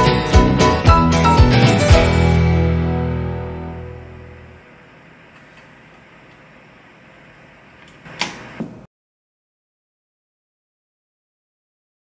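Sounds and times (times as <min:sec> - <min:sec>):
television static hiss: 0:03.4 - 0:08.8.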